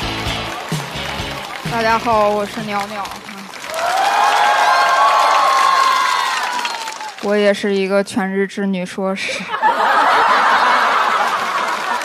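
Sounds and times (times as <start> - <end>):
studio audience laughing: 9.3 - 12.0.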